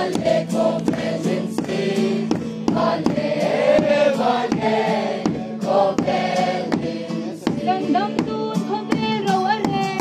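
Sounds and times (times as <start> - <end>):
group singing in chorus: 0.0 - 8.4
regular struck beat: 0.0 - 10.0.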